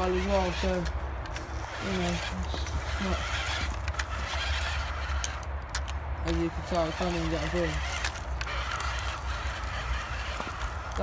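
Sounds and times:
toy electric motor whining: 0.0s - 11.0s.

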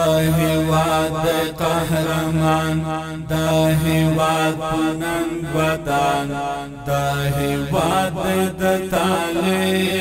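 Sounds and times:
person singing chant-like song: 0.0s - 10.0s.

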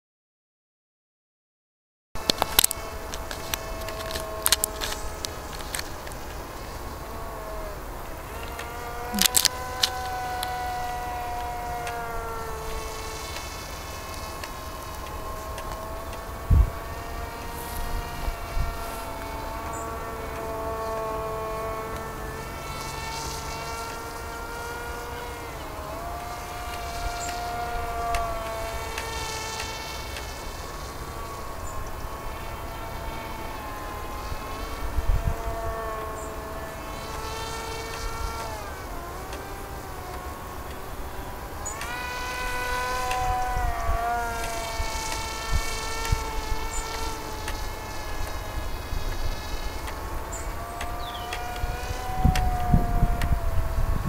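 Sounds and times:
model plane motor buzzing: 2.2s - 54.0s.

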